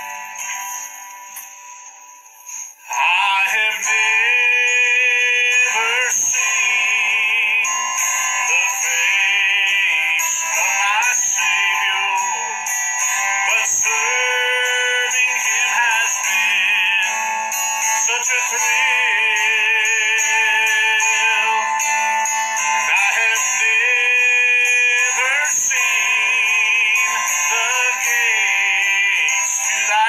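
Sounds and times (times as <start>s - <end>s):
man singing: 2.9s - 30.0s.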